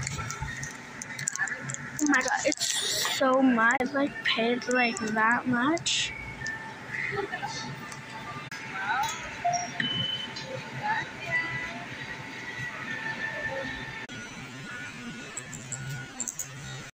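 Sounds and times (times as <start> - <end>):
indistinct voices: 0.0 - 14.1
faint background music: 0.0 - 16.9.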